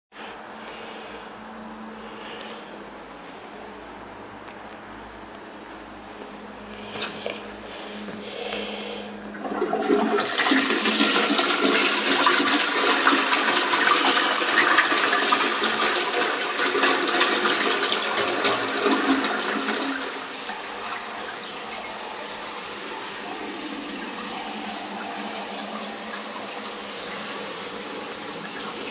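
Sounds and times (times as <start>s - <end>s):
toilet flushing: 6.9s - 28.9s
water running: 9.3s - 28.9s.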